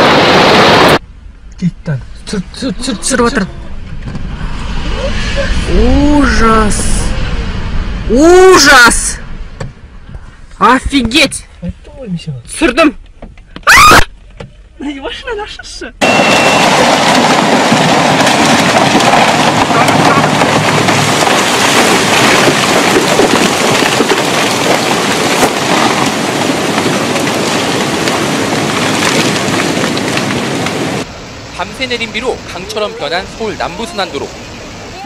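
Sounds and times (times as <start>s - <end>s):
loud burst: 0.0s - 1.0s, 16.0s - 31.1s
strong wind rushing: 2.2s - 11.2s
voices: 4.7s - 9.3s.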